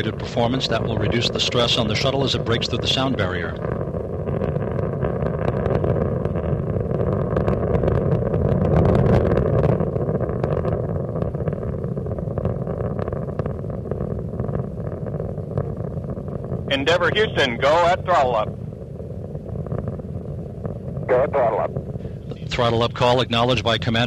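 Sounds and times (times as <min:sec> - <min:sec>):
rocket engines rumbling and crackling: 0:00.0 - 0:24.0.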